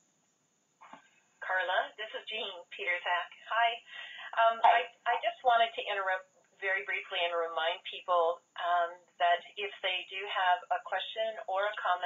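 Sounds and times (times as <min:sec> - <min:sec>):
person speaking over telephone: 0:01.4 - 0:12.0.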